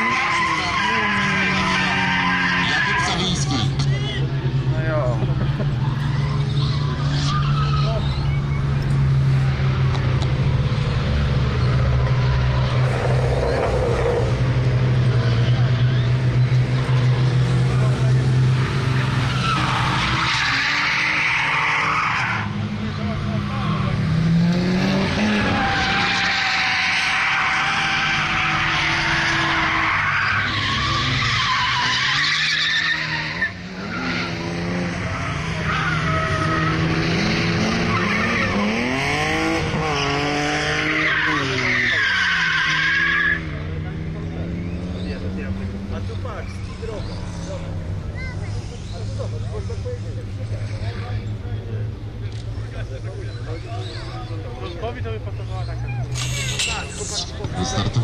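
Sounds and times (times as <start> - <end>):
engines revving: 0.0 - 58.0
people talking: 0.1 - 5.5, 22.8 - 24.1, 43.8 - 58.0.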